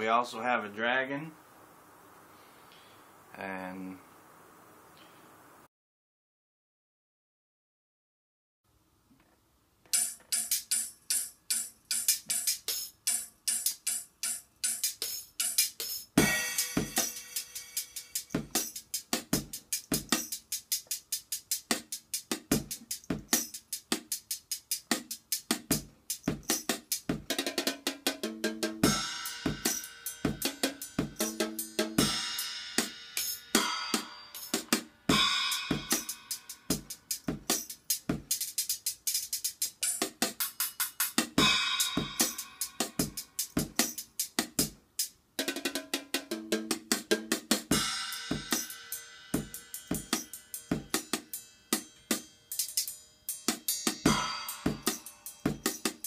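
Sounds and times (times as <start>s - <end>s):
fast drumming with drumsticks: 14.7s - 17.2s, 18.2s - 32.2s, 34.6s - 44.8s, 45.4s - 48.7s
cymbal crash ringing: 16.2s - 18.7s, 28.8s - 37.3s, 40.6s - 43.2s, 47.7s - 56.0s.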